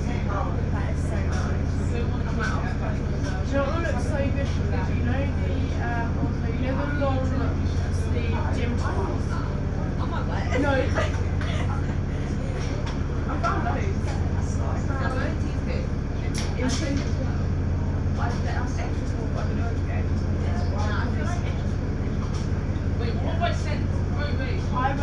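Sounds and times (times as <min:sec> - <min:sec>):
bus engine idling: 0:00.0 - 0:25.0
passengers talking: 0:00.0 - 0:25.0.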